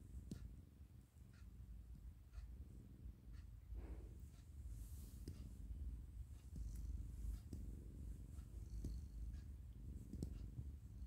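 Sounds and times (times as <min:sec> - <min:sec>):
cat purring: 0:00.0 - 0:11.0
faint clicks: 0:03.3 - 0:11.0.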